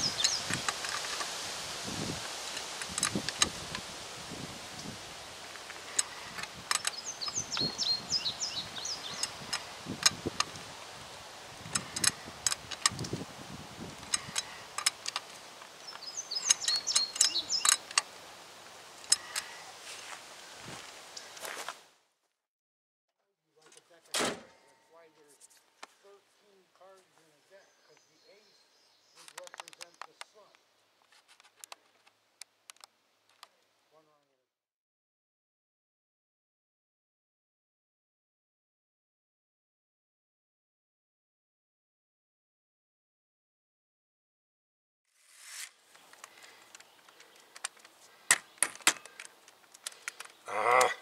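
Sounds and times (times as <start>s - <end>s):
outdoor hiss: 0.0s - 22.0s
bird trilling: 15.9s - 17.9s
thump: 24.1s - 24.6s.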